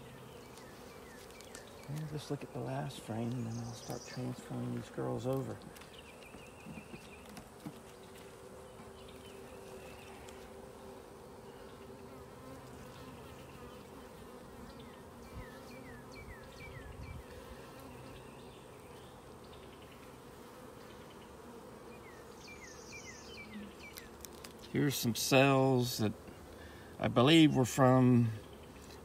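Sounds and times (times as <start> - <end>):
honeybees buzzing: 0.0 - 29.0.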